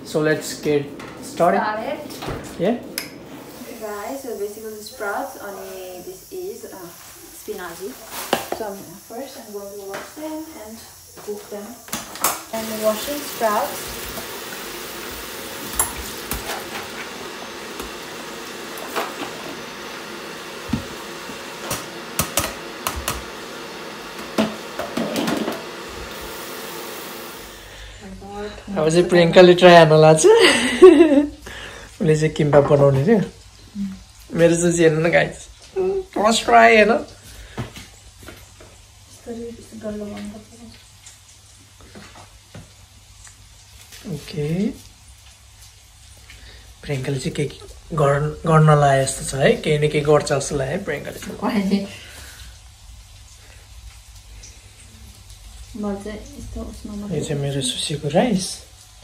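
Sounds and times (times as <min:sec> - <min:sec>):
tap water running into sink: 0:03.4 - 0:28.0.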